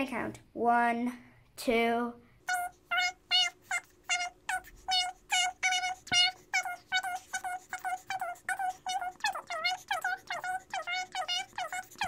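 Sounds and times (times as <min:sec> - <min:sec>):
sped-up child's voice counting: 0:00.0 - 0:12.0.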